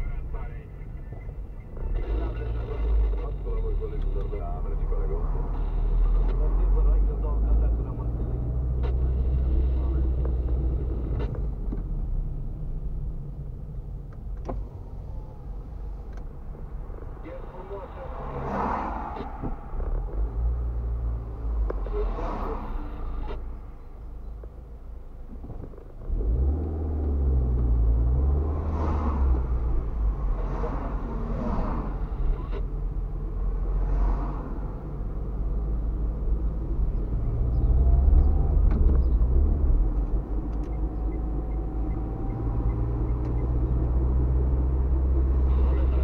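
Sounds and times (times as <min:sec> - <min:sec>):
car engine and road rumble: 0:00.0 - 0:46.0.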